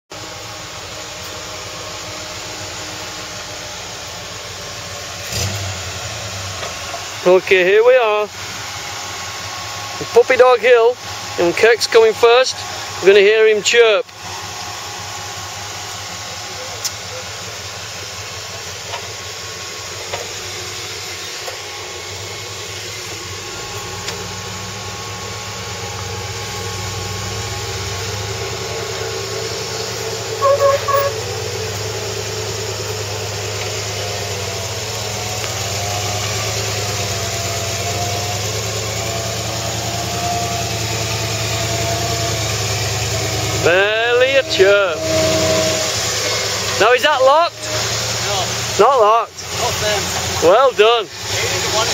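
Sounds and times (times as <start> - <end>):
off-road vehicle engine under load: 0.0 - 51.9
short high squeal: 29.8 - 31.8, 43.2 - 46.8.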